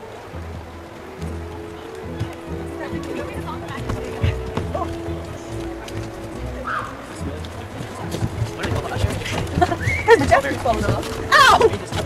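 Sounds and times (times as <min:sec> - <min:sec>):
footsteps on wooden boardwalk: 0:00.0 - 0:12.0
voices talking: 0:00.0 - 0:12.0.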